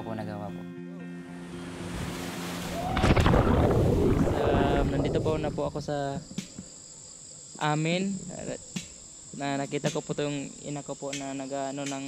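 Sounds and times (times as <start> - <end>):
insects chirping: 0.0 - 12.0
churning water: 1.9 - 5.6
loud splash into water: 2.2 - 5.4
wind on microphone: 2.8 - 6.0.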